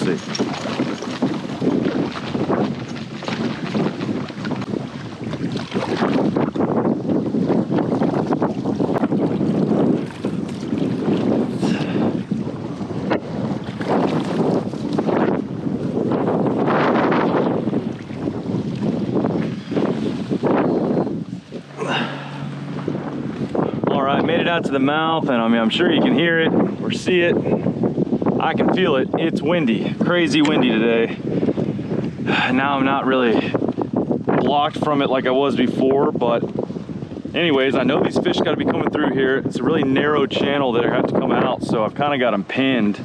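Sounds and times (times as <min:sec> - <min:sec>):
gusting wind buffeting microphone: 0:00.0 - 0:43.0
water sloshing around kayak: 0:00.0 - 0:43.0.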